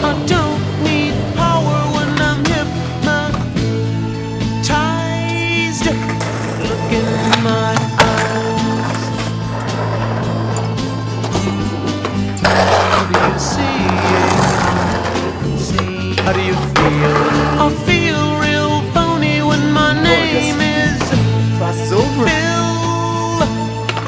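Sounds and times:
music track: 0.0 - 24.0
skateboard on concrete: 0.0 - 24.0
skateboard sliding on ledge: 0.0 - 24.0.

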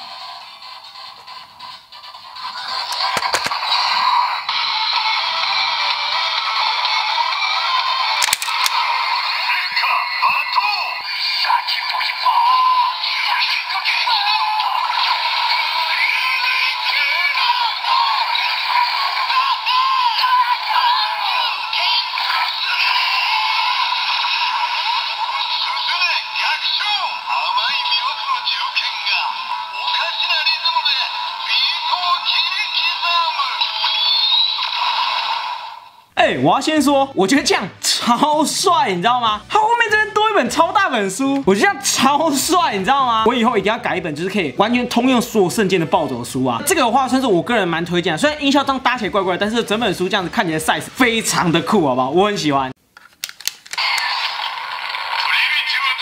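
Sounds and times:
toy electronic music: 0.0 - 35.2
toy electronic announcement voice: 9.4 - 35.2, 55.2 - 56.0.

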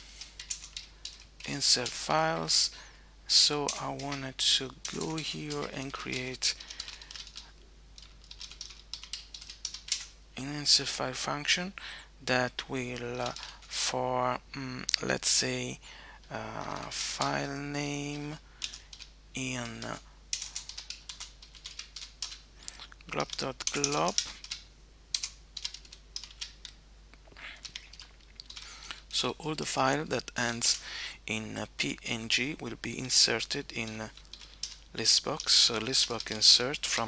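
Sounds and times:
typing on computer keyboard: 0.3 - 2.1, 3.6 - 4.2, 4.8 - 7.4, 8.0 - 10.1, 18.6 - 22.4, 23.1 - 26.8, 27.6 - 28.7, 33.8 - 37.0.

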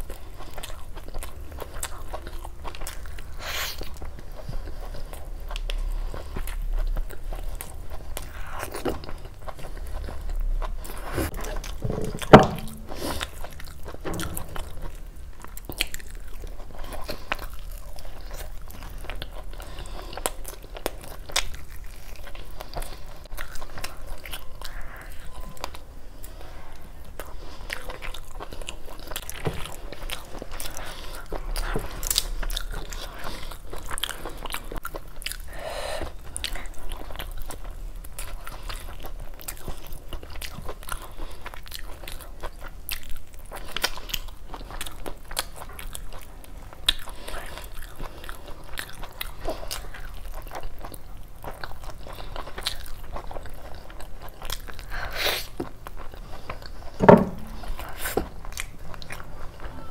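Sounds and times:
chewing and mouth sounds: 0.0 - 59.9.

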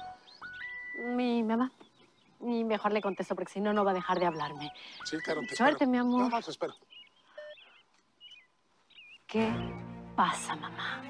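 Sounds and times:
bird chirps: 0.0 - 10.6
quiet outdoor ambience: 0.0 - 11.0.

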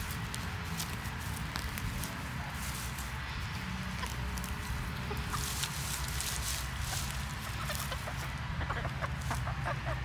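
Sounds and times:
hens clucking: 1.5 - 10.0.

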